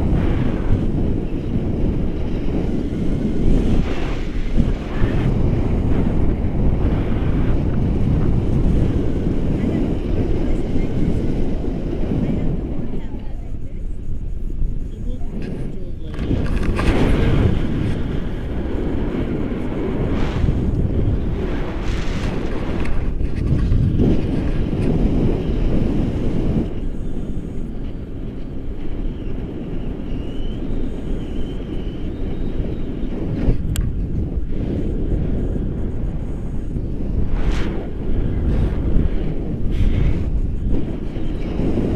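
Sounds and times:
wind buffeting microphone: 0.0s - 41.9s.

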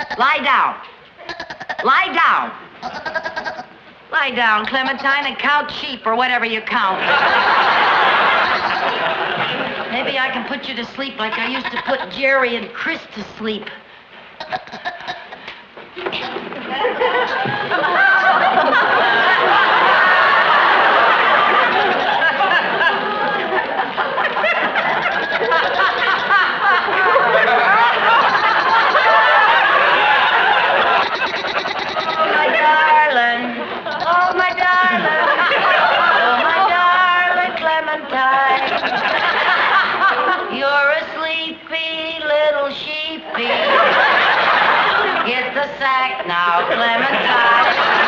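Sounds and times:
studio audience laughing: 6.9s - 10.5s, 16.4s - 34.0s, 34.6s - 37.5s, 38.4s - 40.6s, 43.3s - 45.4s, 46.6s - 48.0s.

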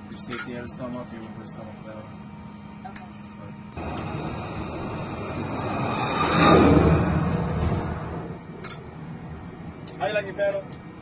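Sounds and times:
jet engine noise: 0.0s - 11.0s
steady low hum: 0.0s - 11.0s.

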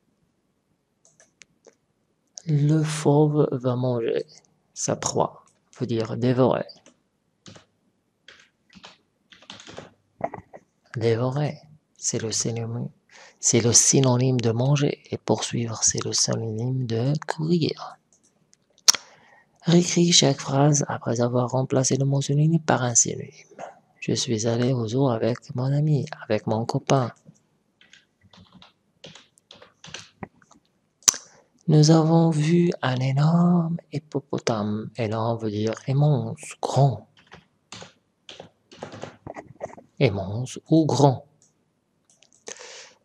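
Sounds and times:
keyboard typing: 1.0s - 1.5s, 6.7s - 7.7s, 8.3s - 10.6s, 27.2s - 30.6s, 37.1s - 40.0s.

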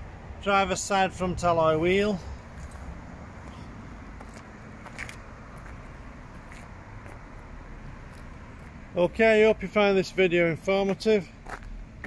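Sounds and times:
low outdoor background noise: 0.0s - 12.0s.

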